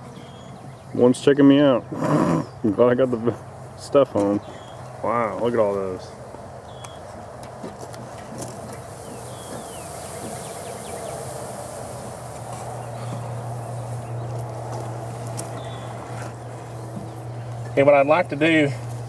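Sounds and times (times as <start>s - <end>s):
bees humming: 8.4s - 19.0s.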